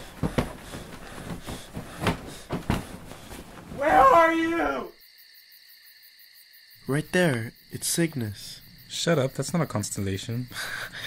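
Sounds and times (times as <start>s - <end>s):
bedding rustling: 0.0s - 4.9s
crickets chirping: 0.0s - 11.0s.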